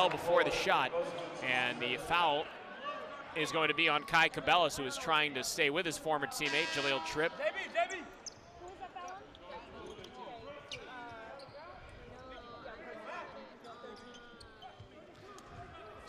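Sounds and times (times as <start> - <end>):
crowd voices hum: 0.0 - 16.0.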